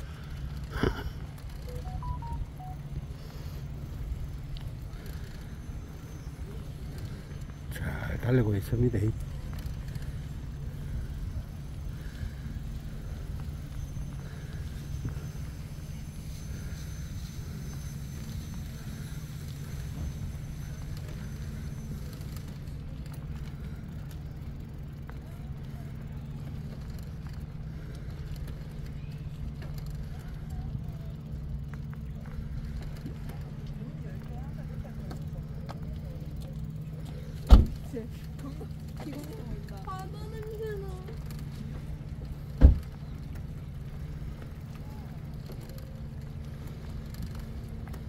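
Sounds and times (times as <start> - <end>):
bicycle rolling on paved path: 0.0 - 48.0
faint steady hum: 0.0 - 48.0.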